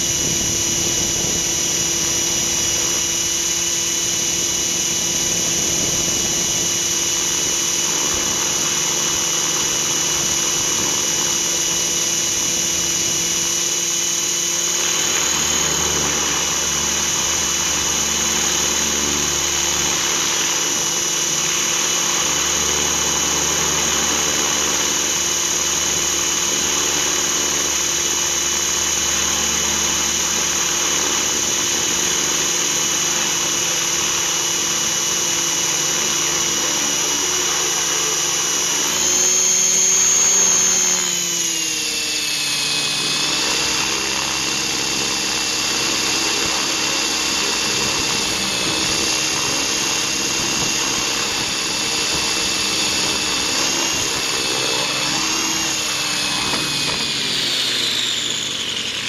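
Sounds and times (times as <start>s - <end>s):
helicopter rotor noise: 0.0s - 59.0s
rc helicopter motor whine: 0.0s - 59.0s.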